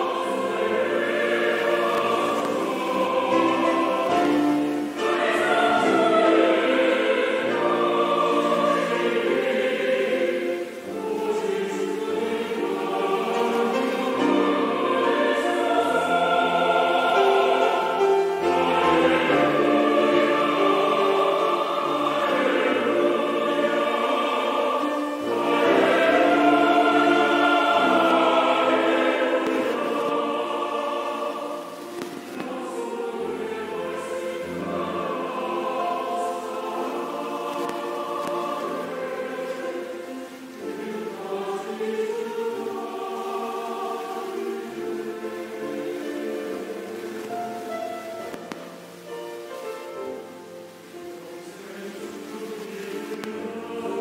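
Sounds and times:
large choir singing: 0:00.0 - 0:54.0.

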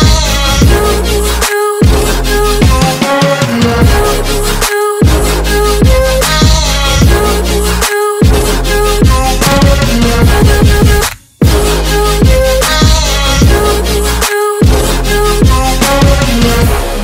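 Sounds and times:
electronic music with deep bass: 0:00.0 - 0:17.0.

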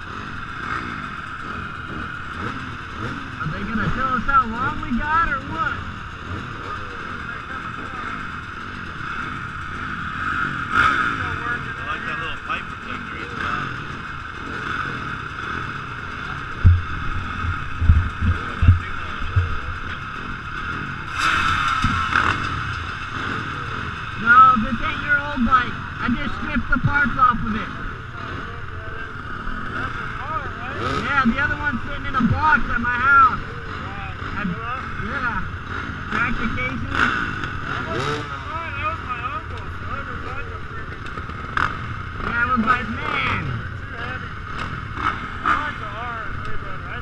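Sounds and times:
dirt bike engines rumbling: 0:00.0 - 0:47.0
people talking: 0:03.4 - 0:05.9, 0:06.6 - 0:08.3, 0:10.9 - 0:13.8, 0:18.2 - 0:20.1, 0:24.2 - 0:35.5, 0:36.1 - 0:41.1, 0:42.2 - 0:44.3, 0:45.4 - 0:47.0
short deep thumps: 0:16.6 - 0:19.9.

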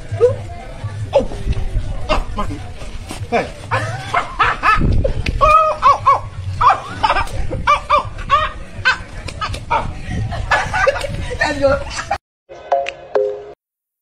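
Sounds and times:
people shouting and laughing: 0:00.0 - 0:13.1.

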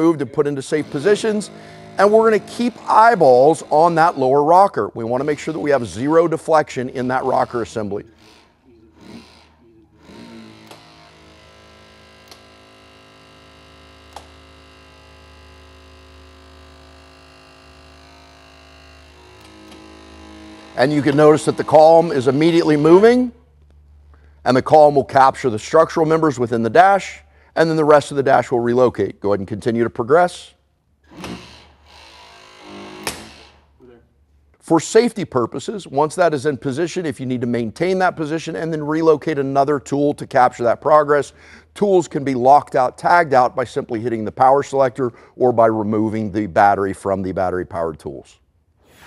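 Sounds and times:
hydraulic rescue ram running: 0:00.6 - 0:04.6, 0:10.0 - 0:23.1.

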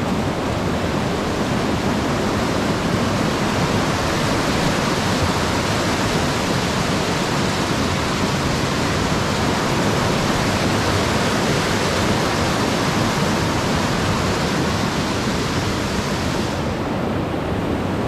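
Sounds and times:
waterfall rushing over rocks: 0:00.0 - 0:18.0.

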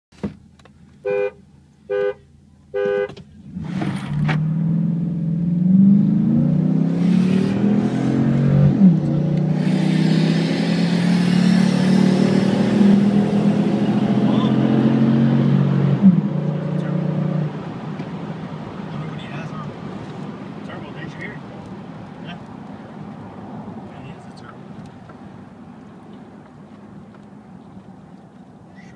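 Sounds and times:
car horn honks: 0:01.0 - 0:03.2
car engine accelerating: 0:03.1 - 0:28.6.

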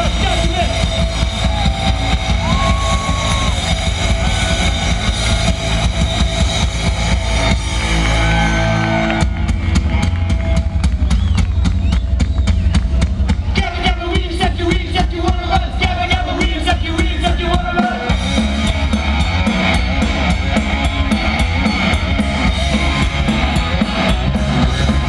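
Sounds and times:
fast drumbeat: 0:00.0 - 0:25.0
live punk rock band: 0:00.0 - 0:25.0.

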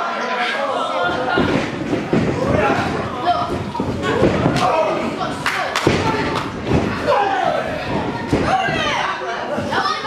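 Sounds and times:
crowd voices: 0:00.0 - 0:10.0
bodies hitting wrestling ring: 0:01.1 - 0:05.0, 0:05.7 - 0:09.0.

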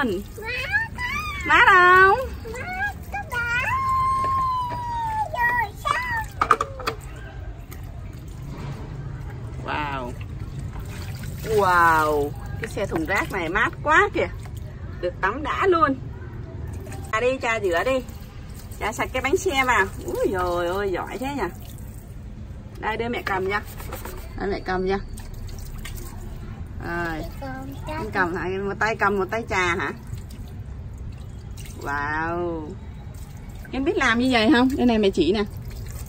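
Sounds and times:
water running from a hose: 0:00.0 - 0:14.8, 0:16.7 - 0:22.2, 0:25.1 - 0:36.0
water splashing into plastic bucket: 0:00.0 - 0:14.8, 0:25.1 - 0:26.4, 0:28.9 - 0:36.0.

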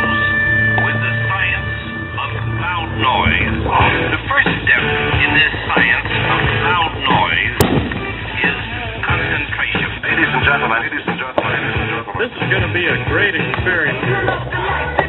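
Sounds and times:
radio music with voices: 0:00.0 - 0:15.0.

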